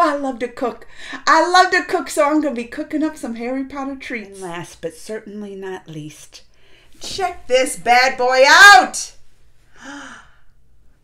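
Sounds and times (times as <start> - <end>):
woman gasping: 0.8 - 1.3, 9.7 - 10.6.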